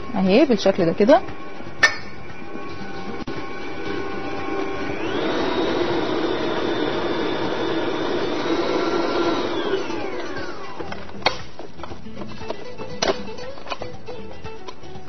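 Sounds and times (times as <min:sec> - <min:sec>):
electric kitchen mixer running: 0:00.0 - 0:11.2.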